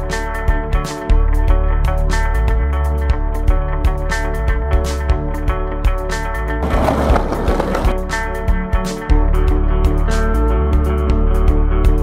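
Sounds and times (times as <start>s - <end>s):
guitar music with steady beat: 0.0s - 12.0s
skateboard wheels rolling on concrete: 6.6s - 8.3s.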